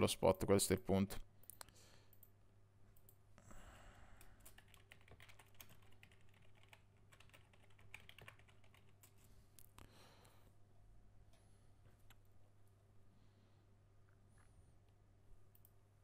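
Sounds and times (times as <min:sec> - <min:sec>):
computer keyboard clicks: 0:04.4 - 0:09.2.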